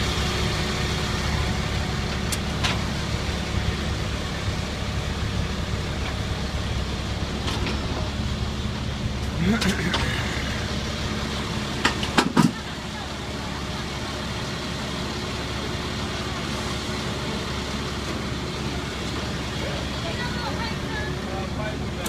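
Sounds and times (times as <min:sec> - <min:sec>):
city street noise: 0:00.0 - 0:22.0
vehicle engines idling: 0:00.0 - 0:22.0.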